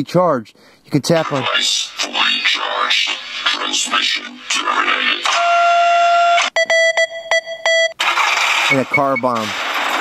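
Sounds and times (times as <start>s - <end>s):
electronic morse code beeps: 5.4s - 8.0s, 8.7s - 9.4s.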